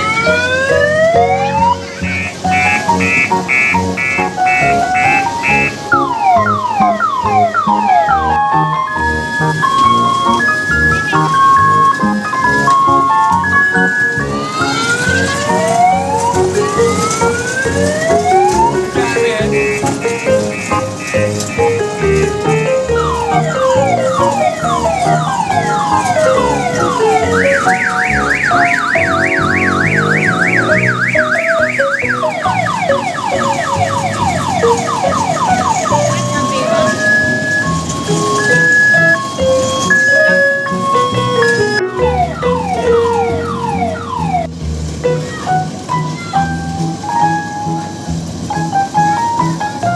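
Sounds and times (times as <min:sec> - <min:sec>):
fast warbling siren effect: 0:00.0 - 0:44.5
simple beeping tune: 0:00.0 - 0:44.5.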